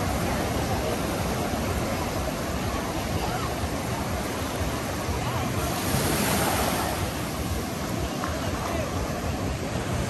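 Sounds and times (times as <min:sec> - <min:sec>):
small waves breaking on sand: 0:00.0 - 0:10.0.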